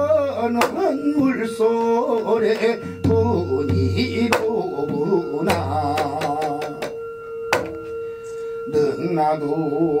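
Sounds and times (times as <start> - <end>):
man singing with vibrato: 0.0 - 7.2, 8.7 - 10.0
ringing brass bowls: 0.0 - 10.0
hourglass drum strikes: 2.6 - 8.0.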